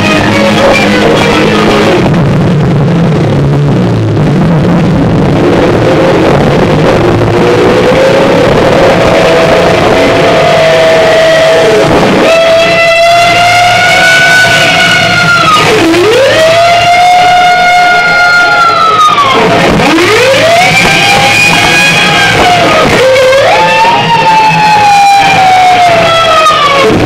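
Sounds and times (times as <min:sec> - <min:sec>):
distorted electric guitar pitch dives: 0:00.0 - 0:27.0
live rock band: 0:00.0 - 0:27.0.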